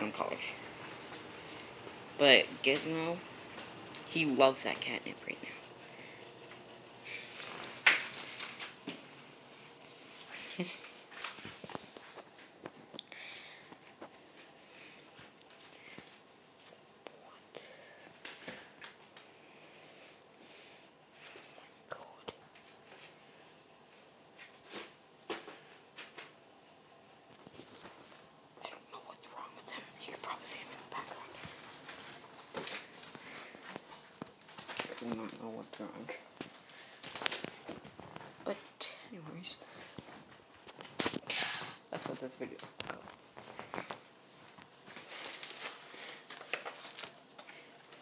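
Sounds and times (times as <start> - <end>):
soft whispering: 17.0 - 18.3, 21.2 - 22.7, 28.5 - 33.9, 38.4 - 40.2
rustles: 43.4 - 48.0.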